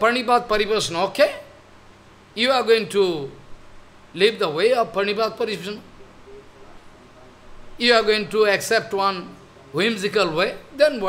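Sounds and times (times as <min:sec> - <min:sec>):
man speaking: 0:00.0 - 0:01.6, 0:02.4 - 0:03.4, 0:04.1 - 0:11.0.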